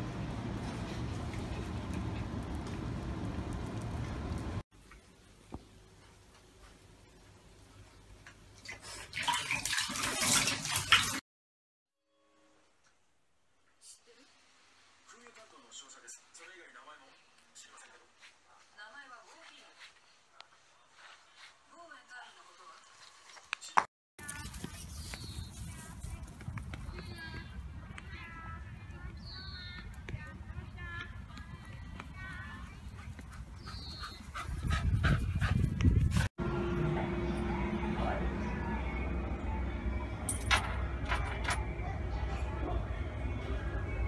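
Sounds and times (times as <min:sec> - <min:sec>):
water running into a bathtub: 0:08.5 - 0:11.2
wind rumbling on microphone: 0:24.4 - 0:36.3.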